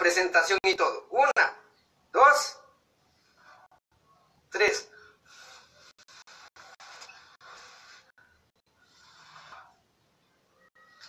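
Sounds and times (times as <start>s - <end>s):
slurping noodles: 8.8s - 9.8s.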